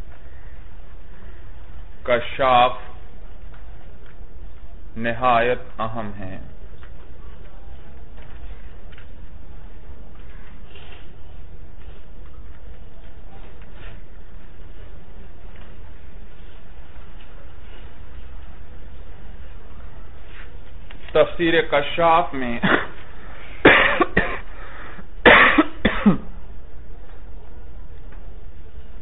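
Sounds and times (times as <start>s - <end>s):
man coughing: 22.6s - 23.0s, 23.6s - 24.5s, 25.2s - 26.3s.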